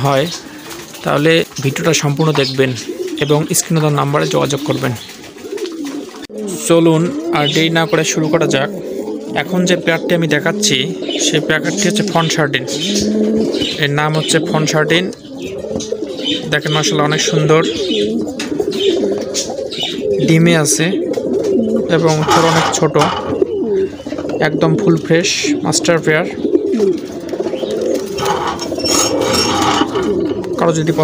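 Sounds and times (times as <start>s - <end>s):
pigeons cooing: 0.0s - 31.0s.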